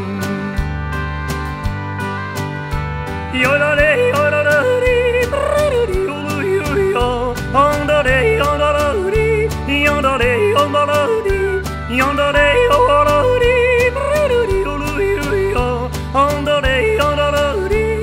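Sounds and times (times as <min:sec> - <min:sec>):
country band playing: 0:00.0 - 0:18.0.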